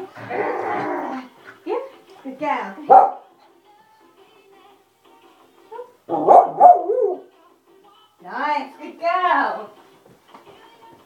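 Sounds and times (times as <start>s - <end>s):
dog barking: 2.8s - 3.3s, 6.1s - 7.3s.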